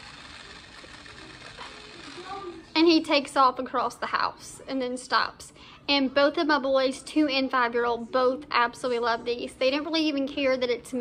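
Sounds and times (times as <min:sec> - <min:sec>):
toy car motor whirring: 0:00.0 - 0:02.7.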